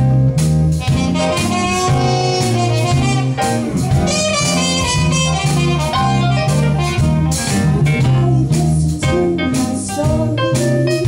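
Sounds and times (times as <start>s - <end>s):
band playing rock and roll: 0.0s - 11.0s.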